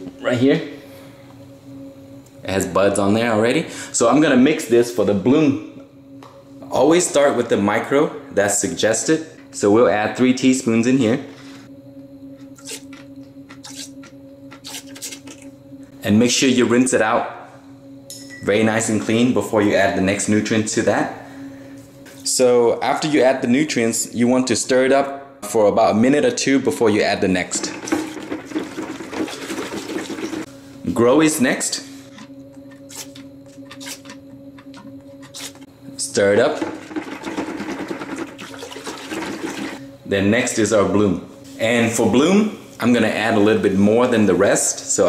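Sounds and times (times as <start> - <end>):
steady low hum: 0.0 - 45.0.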